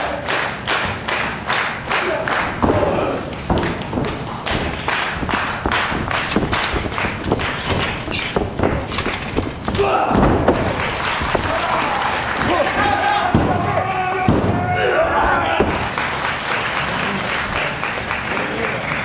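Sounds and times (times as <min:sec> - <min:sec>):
people shouting: 0:02.0 - 0:03.6, 0:09.6 - 0:16.0
regular sharp thuds: 0:02.4 - 0:16.2.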